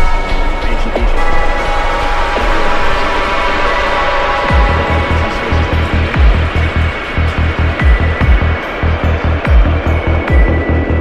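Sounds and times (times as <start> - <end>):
rolling synth bassline: 0.0 - 11.0
sustained high synth tone: 0.0 - 11.0
electronic kick drum: 4.5 - 11.0.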